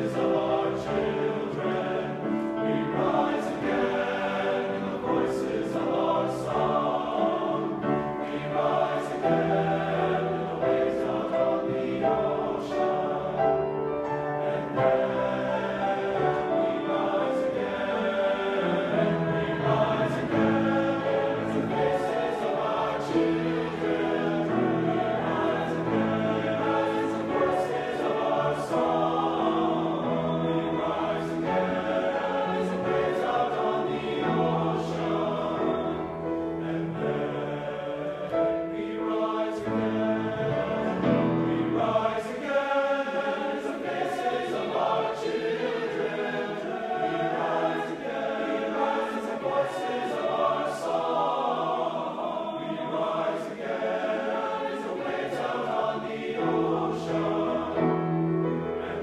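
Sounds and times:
men's choir singing chords: 0.0s - 59.0s.

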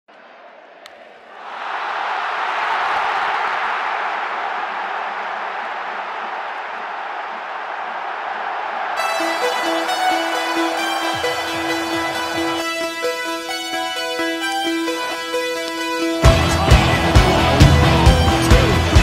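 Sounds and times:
stadium crowd cheering: 0.1s - 19.0s
music: 9.0s - 19.0s.

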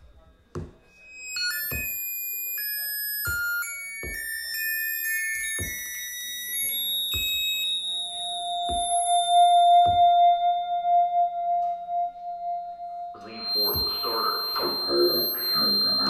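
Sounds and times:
high steady electronic tones: 0.9s - 16.0s.

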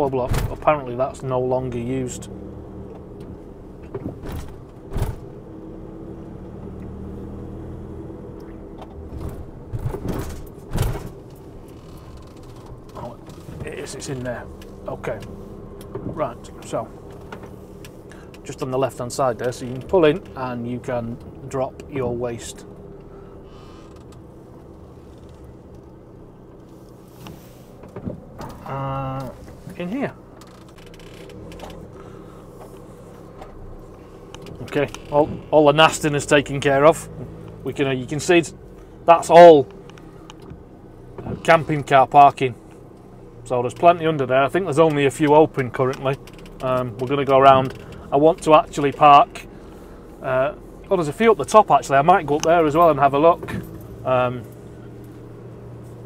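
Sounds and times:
road noise: 0.0s - 56.0s
van engine hum: 0.0s - 56.0s
thumps over speed bumps: 3.0s - 5.4s, 8.5s - 23.0s.

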